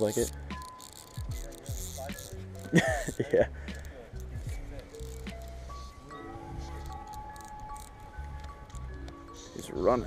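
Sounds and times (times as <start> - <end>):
background music with bass line: 0.0 - 9.4.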